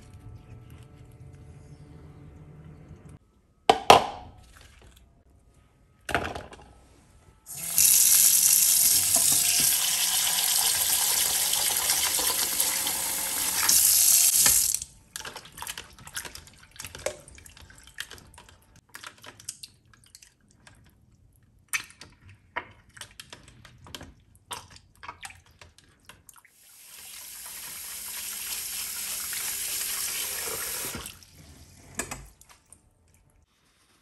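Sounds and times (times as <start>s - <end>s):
tap water running into bowl: 7.5s - 14.8s, 26.9s - 31.1s.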